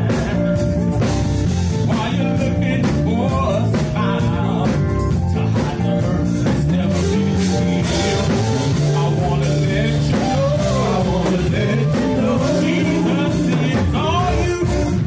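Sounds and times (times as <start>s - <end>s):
drums keeping a steady beat: 0.0s - 15.0s
electric guitar: 0.0s - 15.0s
men's vocal group singing: 0.0s - 15.0s.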